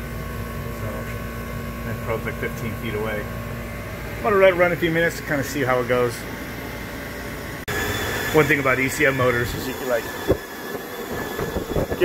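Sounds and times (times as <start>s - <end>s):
heat pump humming: 0.0s - 12.0s.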